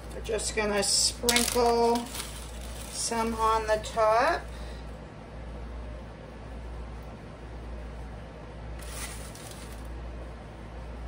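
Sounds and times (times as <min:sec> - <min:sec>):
low room hum: 0:00.0 - 0:11.0
plastic bag rustling: 0:00.8 - 0:04.4, 0:08.8 - 0:09.9.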